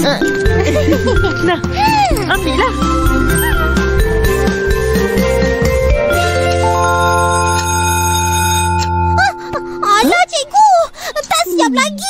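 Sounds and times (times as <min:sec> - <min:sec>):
electronic chime chord: 0:02.4 - 0:10.1.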